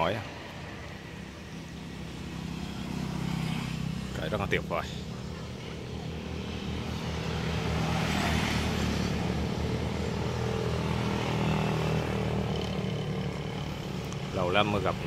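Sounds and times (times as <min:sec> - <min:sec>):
road traffic engine hum: 0:00.0 - 0:15.0
vehicle passing: 0:00.0 - 0:15.0.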